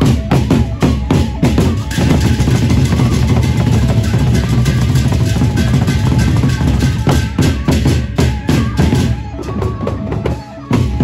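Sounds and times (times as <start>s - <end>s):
barrel drums beaten with sticks: 0.0s - 11.0s.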